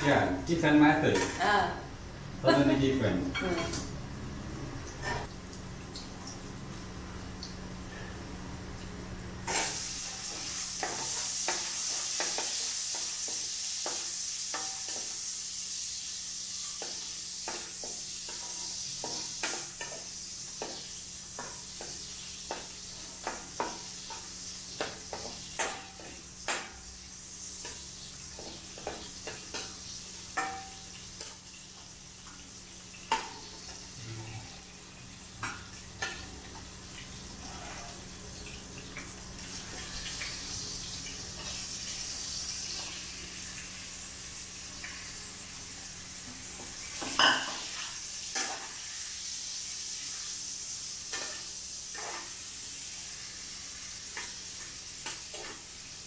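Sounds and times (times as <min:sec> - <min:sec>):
food sizzling in oil: 0:00.0 - 0:56.0.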